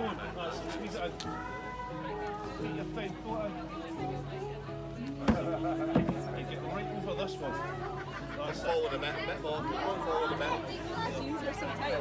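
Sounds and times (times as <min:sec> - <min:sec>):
background music: 0:00.0 - 0:12.0
stone knocking on wooden barrel: 0:05.2 - 0:06.3.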